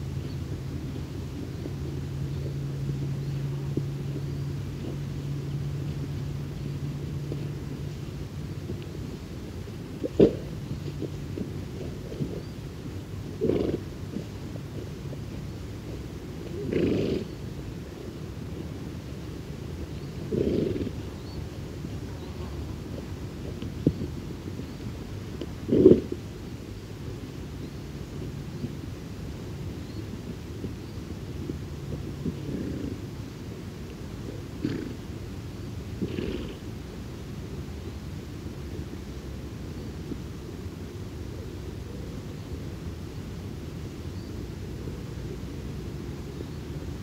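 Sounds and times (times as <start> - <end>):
pony snuffling breaths: 0.9 - 18.8, 19.7 - 26.3, 31.4 - 33.5, 34.2 - 35.1, 35.9 - 36.8
ponies snorting: 1.5 - 17.4, 20.0 - 24.2, 25.3 - 26.2, 32.0 - 33.1, 34.2 - 35.1, 35.9 - 36.7.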